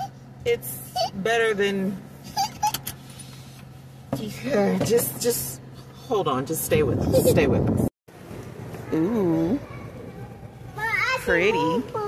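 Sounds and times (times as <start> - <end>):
low hum in car cabin: 0.0 - 7.9.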